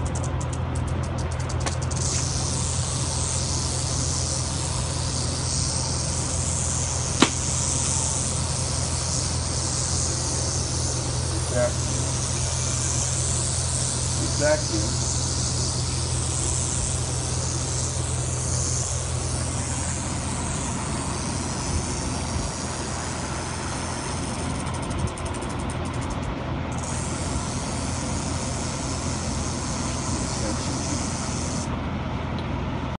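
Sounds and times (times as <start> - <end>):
rattlesnake rattling: 0.0 - 31.7
low engine hum: 0.0 - 33.0.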